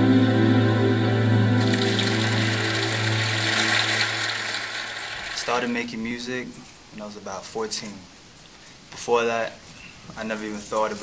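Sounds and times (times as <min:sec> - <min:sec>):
keyboard and guitars holding chord: 0:00.0 - 0:04.8
steady wash of noise: 0:00.9 - 0:06.4.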